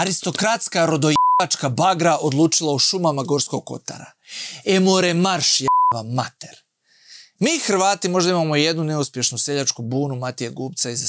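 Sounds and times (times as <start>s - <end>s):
man talking: 0.0s - 6.6s, 7.4s - 11.0s
censor bleep: 1.2s - 1.4s, 5.7s - 6.0s.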